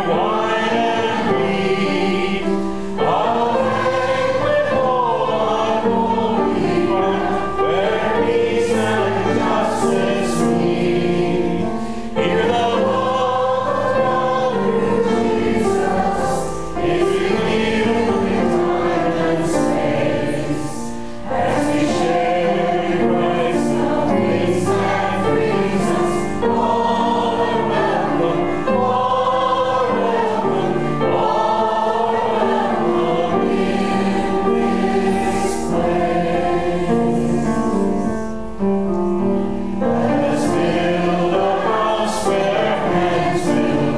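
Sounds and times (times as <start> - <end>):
choir singing in harmony: 0.0 - 43.9.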